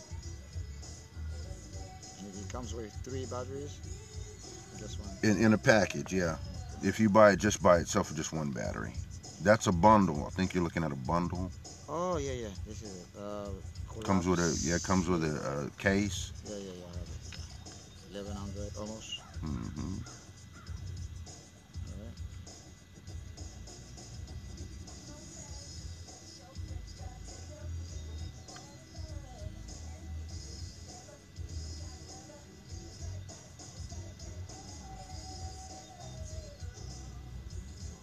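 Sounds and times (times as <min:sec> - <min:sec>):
gulls calling: 0:14.0 - 0:21.1.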